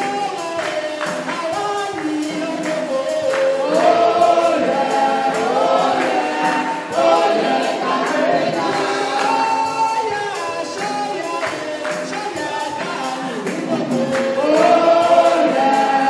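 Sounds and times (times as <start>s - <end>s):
tambourine beat: 0.0s - 16.0s
voices singing along: 0.0s - 16.0s.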